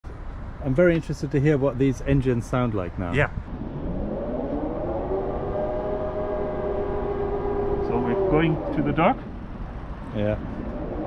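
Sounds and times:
electric motors whining: 3.6 - 9.8.

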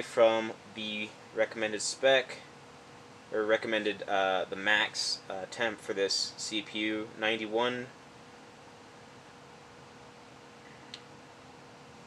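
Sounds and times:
computer fan humming: 0.0 - 12.0
faint click: 10.6 - 11.1.

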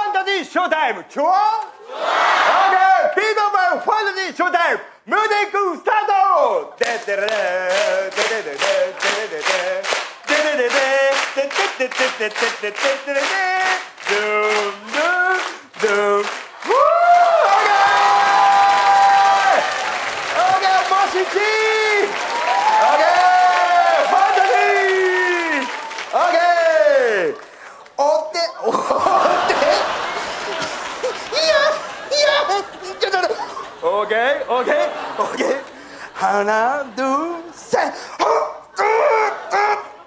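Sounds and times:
audience applause and cheering: 7.2 - 28.0, 28.9 - 35.9
man yelping: 38.2 - 40.0.

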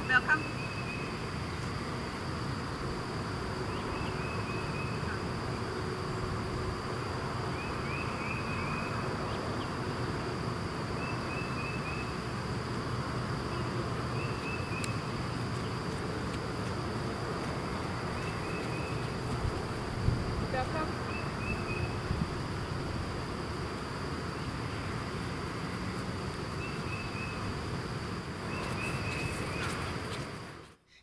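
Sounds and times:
insects buzzing: 0.0 - 30.8.

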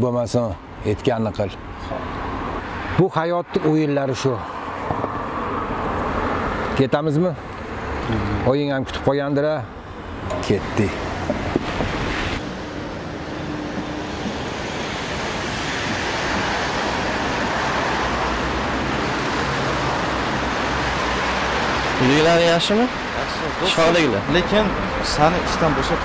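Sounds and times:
distant city traffic: 0.0 - 26.0.

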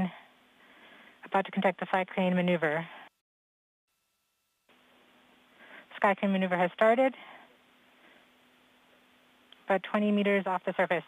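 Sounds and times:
faint steady hiss: 3.9 - 11.0.

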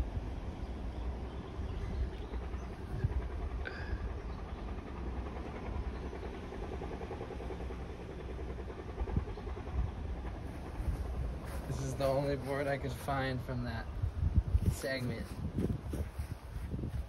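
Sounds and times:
low rumble of background noise: 0.0 - 17.0.

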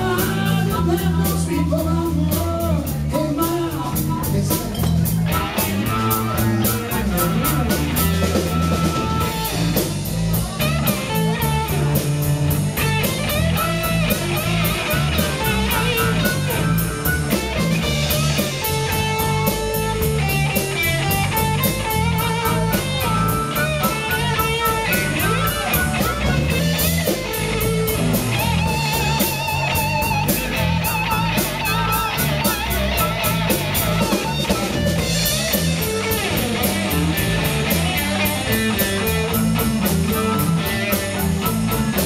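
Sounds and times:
bass guitar: 0.0 - 42.0
drum kit: 0.0 - 42.0
electric guitar: 0.0 - 42.0.

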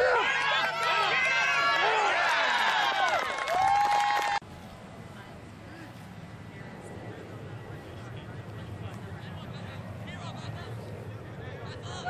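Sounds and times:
spectators shouting and cheering: 0.0 - 4.4.

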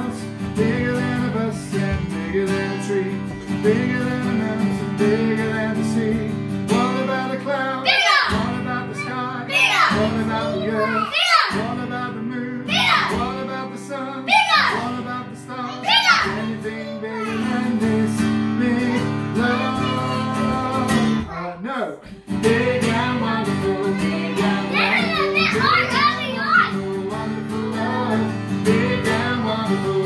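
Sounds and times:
people singing worship song: 0.0 - 21.2, 22.3 - 30.0
acoustic guitar strumming: 0.0 - 21.4, 22.2 - 30.0.

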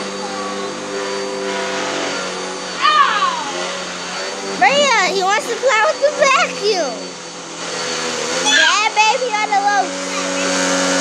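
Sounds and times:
vacuum cleaner motor hum: 0.0 - 11.0.

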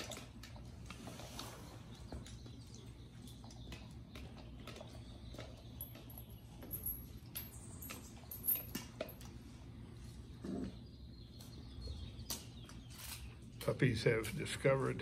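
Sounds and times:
steady low hum: 0.0 - 15.0
metal chains clinking and rattling: 5.3 - 9.3.

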